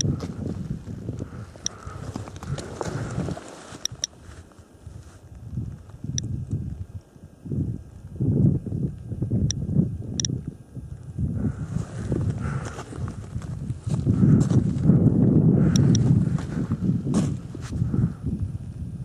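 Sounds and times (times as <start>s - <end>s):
dosimeter clicks: 0.0s - 0.2s, 1.2s - 2.6s, 3.8s - 4.2s, 10.2s - 10.4s, 15.7s - 16.0s.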